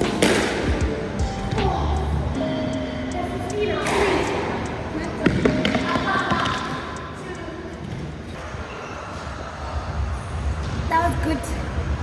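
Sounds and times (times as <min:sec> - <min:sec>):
racket hitting squash ball: 0:00.0 - 0:00.9
ball striking wall and floor: 0:00.0 - 0:01.7, 0:03.8 - 0:04.4, 0:05.2 - 0:06.8.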